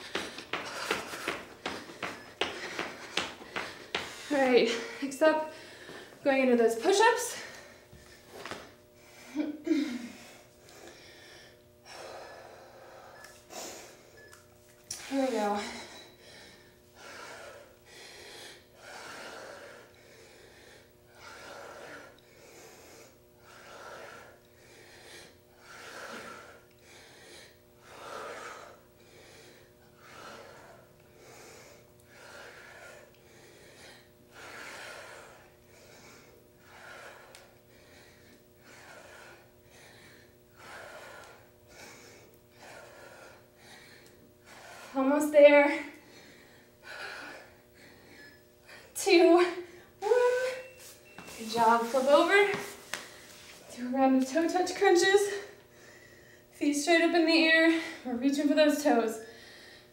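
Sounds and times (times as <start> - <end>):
woman breathing hard: 0.0 - 6.2, 7.2 - 53.8, 54.8 - 56.6, 59.2 - 59.9.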